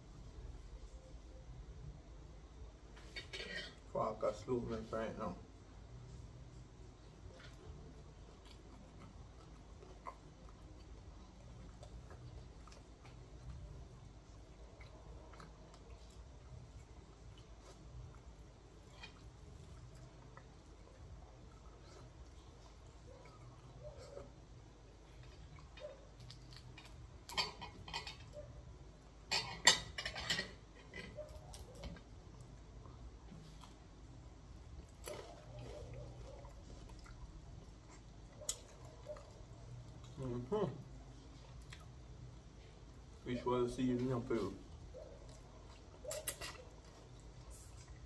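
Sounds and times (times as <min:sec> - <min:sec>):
faint chewing: 0:05.8 - 0:48.0.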